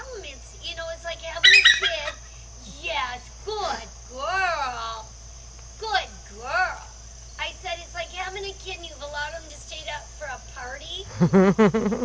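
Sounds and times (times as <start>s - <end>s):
eagle calling: 0.8s - 3.8s.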